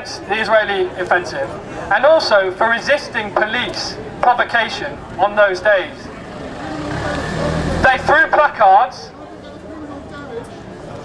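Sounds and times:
vehicle engine rumbling: 4.9 - 8.7.

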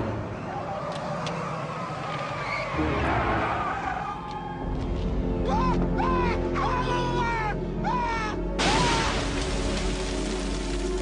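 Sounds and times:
car tyres squealing: 0.4 - 4.3.

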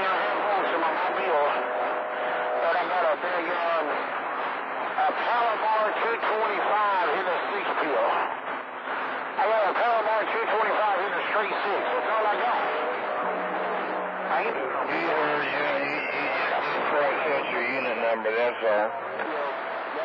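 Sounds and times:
steady radio whistle: 0.0 - 4.2, 10.5 - 20.0
men talking over cb radio: 0.0 - 20.0
radio static noise: 0.0 - 20.0.

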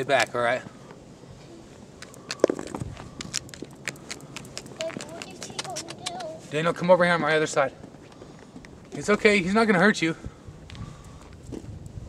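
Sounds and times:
footsteps on asphalt: 1.9 - 9.4, 10.6 - 12.0.

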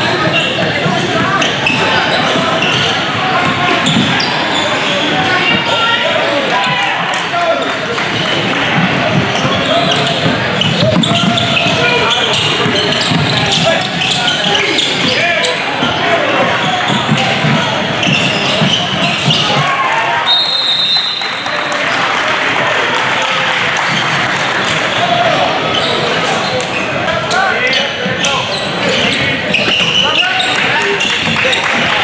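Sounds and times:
voices and shouts: 0.0 - 32.0
shoes on hardwood court: 6.6 - 20.0.

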